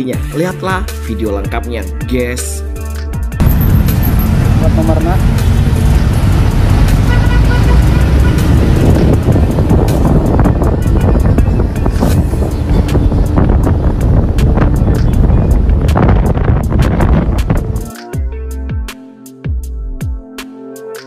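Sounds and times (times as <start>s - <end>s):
music playing: 0.0s - 21.0s
road traffic rumble: 3.4s - 17.9s.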